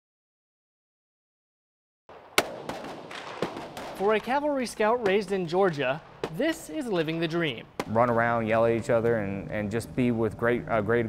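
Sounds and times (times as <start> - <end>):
loud rifle shot: 2.1 - 5.2.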